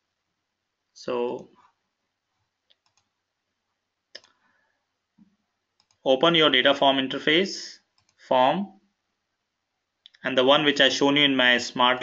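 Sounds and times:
faint computer mouse clicks: 2.7 - 3.1, 5.2 - 6.0, 7.9 - 8.2.

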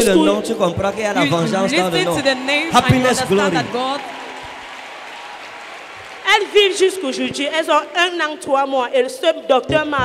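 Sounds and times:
congregation applauding: 1.1 - 8.6.

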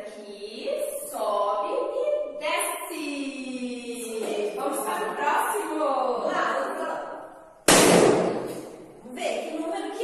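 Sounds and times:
balloon bursting: 7.6 - 8.9.

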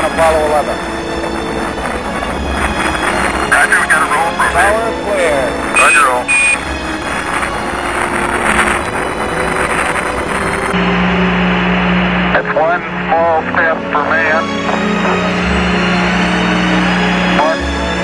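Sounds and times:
static hiss: 0.0 - 10.8
garbled radio voices: 3.4 - 6.7, 12.4 - 15.5
short high beeps: 5.8 - 6.7.

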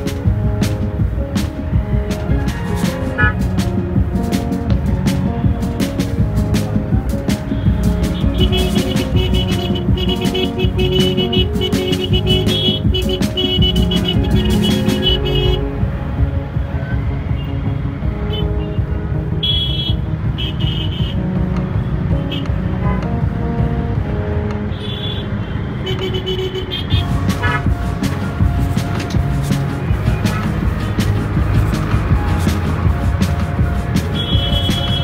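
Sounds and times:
background music: 0.0 - 35.0
vehicle horn honks: 3.2 - 3.4, 24.7 - 27.7, 34.1 - 35.0.

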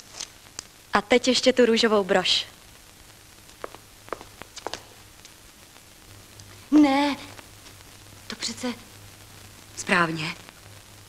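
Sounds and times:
faint steady hum: 0.0 - 11.0
faint taps and clicks: 3.5 - 5.4.

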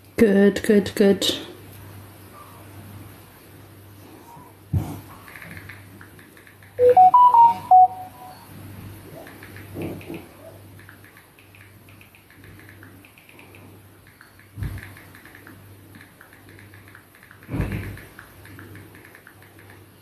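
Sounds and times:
faint short high sounds: 6.8 - 8.5.

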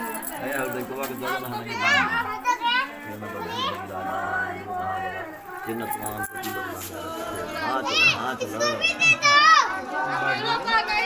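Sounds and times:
adults and children talking: 0.0 - 11.0.

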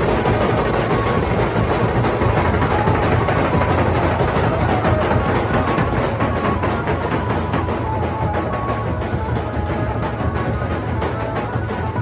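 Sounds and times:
dhol band drumming: 0.0 - 12.0.

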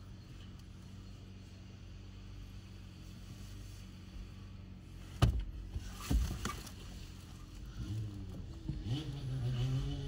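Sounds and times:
vehicle engines idling: 0.0 - 10.0.

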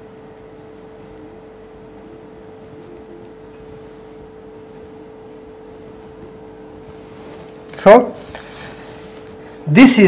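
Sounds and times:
mid-pitched hum: 0.0 - 10.0
room tone hiss: 0.0 - 10.0.

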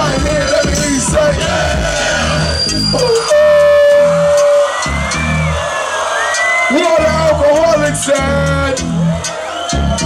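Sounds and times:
hip hop beat over speakers: 0.0 - 10.0
long held tone: 2.4 - 4.7.

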